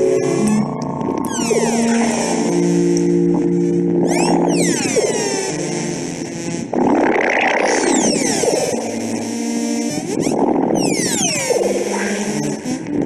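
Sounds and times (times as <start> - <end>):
high tones sweeping downward: 0.0 - 5.2
sustained synthesizer chords: 0.0 - 13.0.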